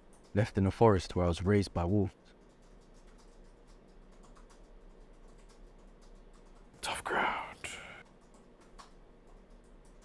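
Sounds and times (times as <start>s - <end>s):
person whispering: 6.8s - 8.0s.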